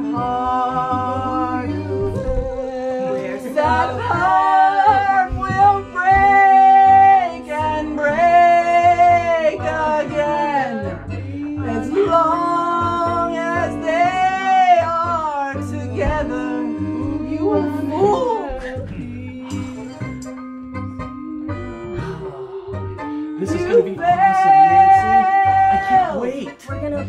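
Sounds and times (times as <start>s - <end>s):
person singing with vibrato: 0.0s - 26.5s
sustained low instrumental chords: 0.0s - 27.0s.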